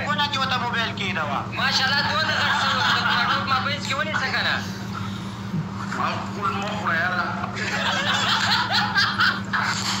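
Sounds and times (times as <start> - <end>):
men laughing: 2.1 - 3.6, 7.5 - 10.0.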